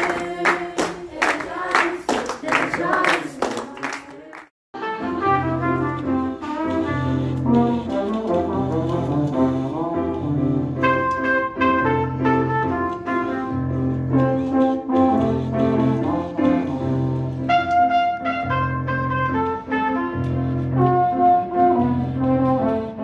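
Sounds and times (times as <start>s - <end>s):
trombones and trumpet playing: 4.8s - 23.0s.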